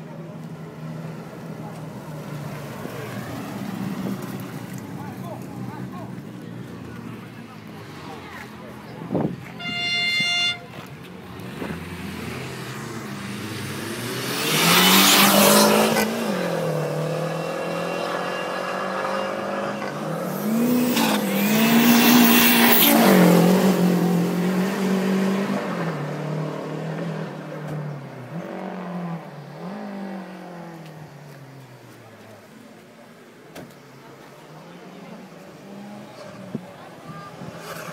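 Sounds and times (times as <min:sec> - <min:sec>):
car engine revving past: 0:11.3 - 0:30.9.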